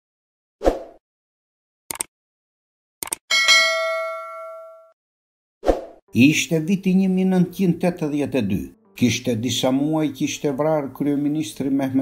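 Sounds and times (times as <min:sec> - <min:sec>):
sharp mouse clicks: 0:01.9 - 0:02.1, 0:03.0 - 0:03.2
notification bell ding: 0:03.3 - 0:05.0.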